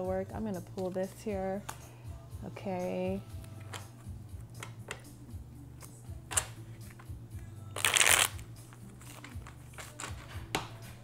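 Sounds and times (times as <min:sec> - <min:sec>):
riffling cards: 0:07.8 - 0:10.3
cards being shuffled: 0:07.8 - 0:10.8.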